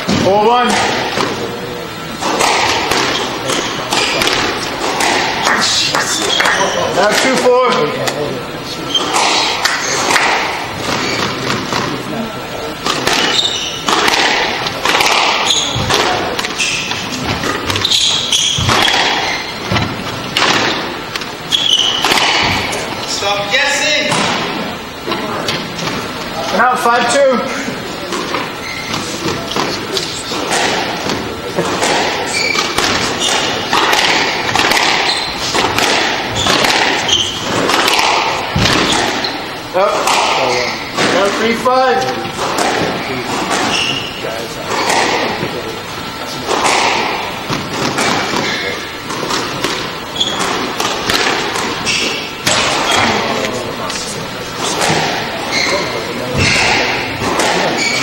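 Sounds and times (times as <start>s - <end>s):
squash ball hits: 2.1s - 8.2s, 9.0s - 22.9s, 28.1s - 45.7s, 46.4s - 53.8s, 54.6s - 58.0s.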